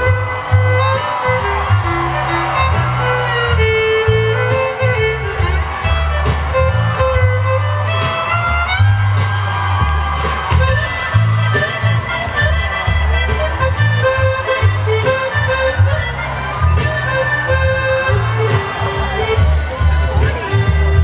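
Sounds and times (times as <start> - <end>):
accordion melody: 0.0 - 21.0
live band playing: 0.0 - 21.0.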